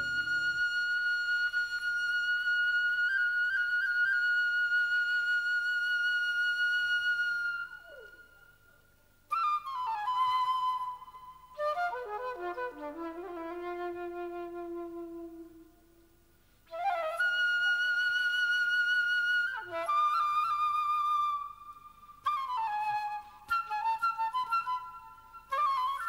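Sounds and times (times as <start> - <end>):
solo flute: 0.0 - 26.0.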